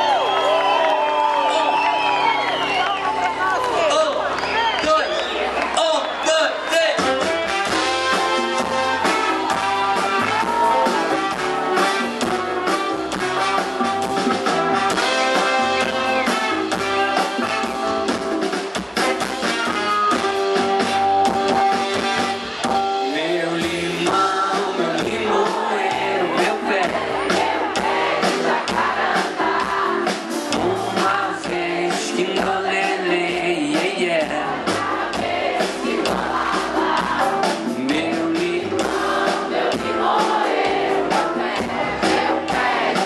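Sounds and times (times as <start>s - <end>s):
bass: 0.0s - 43.0s
drums: 0.0s - 43.0s
trumpet and trombone: 7.0s - 18.2s, 19.0s - 22.6s.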